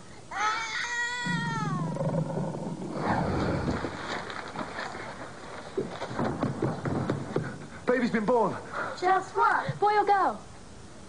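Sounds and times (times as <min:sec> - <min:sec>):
newborn baby crying: 0:00.3 - 0:02.0.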